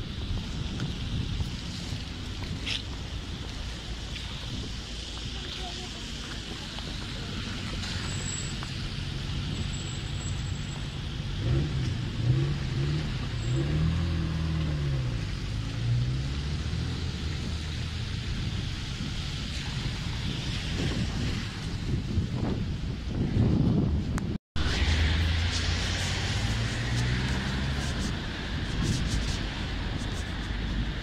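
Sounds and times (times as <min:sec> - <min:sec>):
cars driving on wet road: 0:00.0 - 0:31.0
engine revving: 0:11.4 - 0:18.5, 0:24.6 - 0:30.8.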